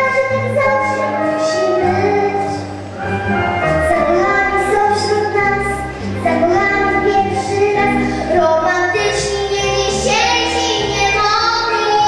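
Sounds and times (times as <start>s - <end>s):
girl singing into a microphone: 0.0s - 2.6s, 3.8s - 12.0s.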